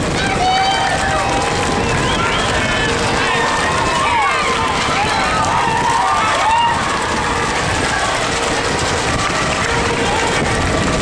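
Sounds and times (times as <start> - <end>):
horses galloping: 0.0 - 11.0
loud rumbling noise: 0.0 - 11.0
people shouting and calling: 0.0 - 11.0.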